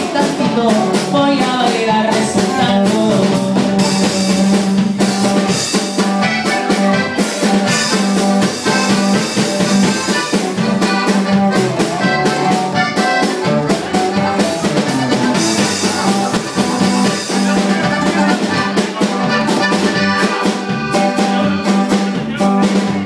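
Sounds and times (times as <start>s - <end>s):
bajo sexto: 0.0s - 23.0s
drum kit beat: 0.0s - 23.0s
electric bass: 0.0s - 23.0s
button accordion: 3.8s - 23.0s.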